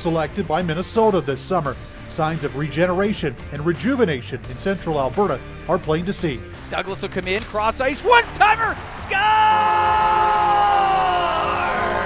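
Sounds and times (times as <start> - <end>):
announcer shouting goal call: 7.9 - 12.0.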